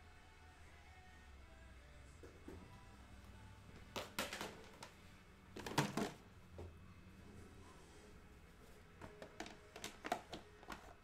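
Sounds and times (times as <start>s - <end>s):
hard objects clattering on desk: 3.9s - 5.0s, 5.6s - 6.2s, 9.0s - 11.0s.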